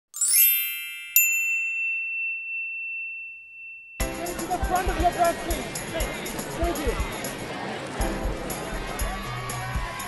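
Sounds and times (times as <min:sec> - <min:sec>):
bright ringing ding: 0:00.2 - 0:04.3
shimmering high tinkle: 0:00.2 - 0:04.8.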